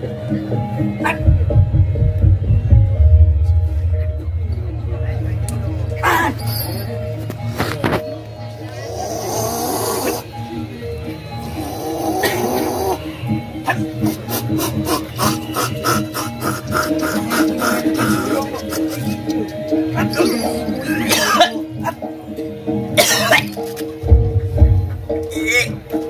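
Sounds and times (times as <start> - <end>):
gamelan music: 0.1 - 14.8, 17.5 - 26.0
fast drumbeats: 1.2 - 7.0, 24.0 - 25.8.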